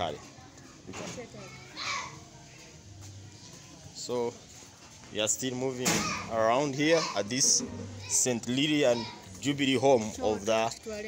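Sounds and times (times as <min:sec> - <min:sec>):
voices of children and adults: 0:00.0 - 0:11.0.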